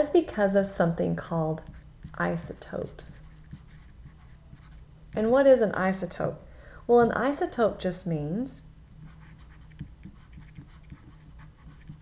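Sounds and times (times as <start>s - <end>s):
low steady hum: 0.0s - 12.0s
stylus scratching and tapping: 1.5s - 5.7s, 9.0s - 12.0s.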